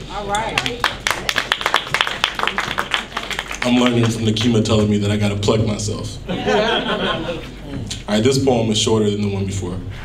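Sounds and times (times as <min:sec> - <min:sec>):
audience clapping: 0:00.5 - 0:04.9.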